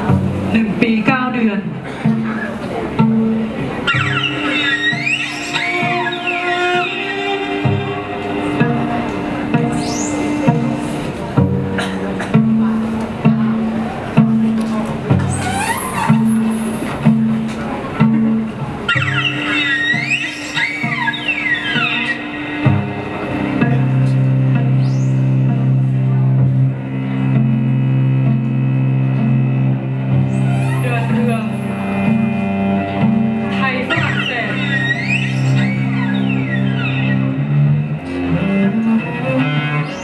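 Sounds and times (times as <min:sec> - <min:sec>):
instrumental ensemble: 0:00.0 - 0:40.0
low plucked cello notes: 0:00.0 - 0:40.0
high sliding tones: 0:03.6 - 0:11.3, 0:15.2 - 0:17.8, 0:18.6 - 0:25.2, 0:30.3 - 0:40.0.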